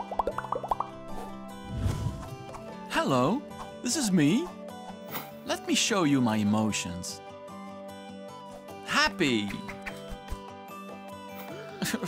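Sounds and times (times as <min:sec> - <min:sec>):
light background music: 0:00.0 - 0:12.0
whoosh: 0:01.7 - 0:02.4.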